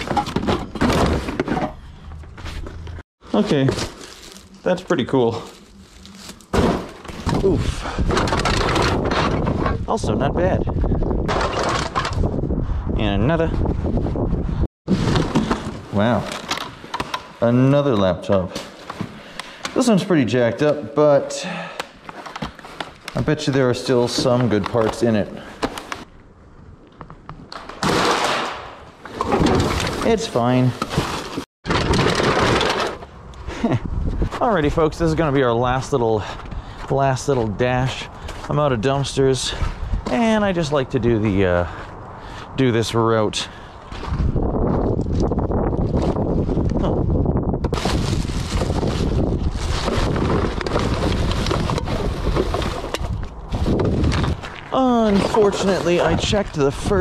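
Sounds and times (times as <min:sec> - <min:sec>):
trash rustling and clattering: 0:00.0 - 0:09.9, 0:11.1 - 0:12.4, 0:14.9 - 0:20.0, 0:27.6 - 0:33.2, 0:47.6 - 0:57.0
plastic bags crinkling: 0:03.4 - 0:07.2, 0:47.8 - 0:52.0
wind rumbling on microphone: 0:07.1 - 0:14.7, 0:33.6 - 0:36.8, 0:39.1 - 0:57.0.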